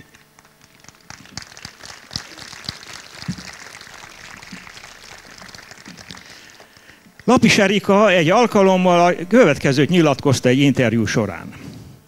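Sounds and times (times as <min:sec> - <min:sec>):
audience applauding: 0:00.0 - 0:09.0.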